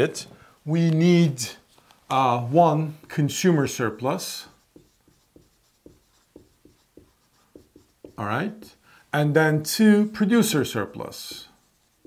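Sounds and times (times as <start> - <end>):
marker squeaking on whiteboard: 4.4 - 8.2, 11.1 - 12.0.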